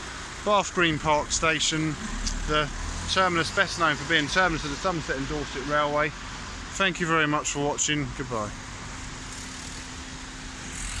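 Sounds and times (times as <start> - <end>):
cars crawling in traffic: 0.0 - 11.0
road noise: 0.0 - 11.0.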